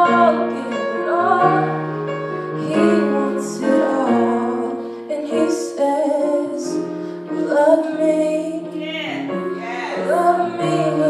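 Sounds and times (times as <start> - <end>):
woman singing: 0.0 - 1.7, 2.6 - 11.0
electric keyboard piano chords: 0.0 - 11.0.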